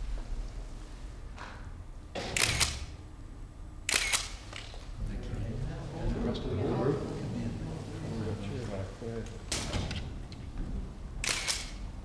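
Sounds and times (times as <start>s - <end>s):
camera shutters clicking: 2.2s - 3.0s, 3.9s - 4.8s, 11.2s - 11.8s.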